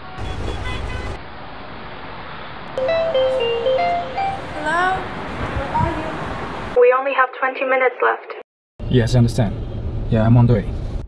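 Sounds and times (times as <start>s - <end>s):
street traffic: 0.0s - 11.0s
electronic phone ringtone: 2.8s - 4.7s
woman speaking: 4.6s - 6.2s, 6.8s - 8.4s.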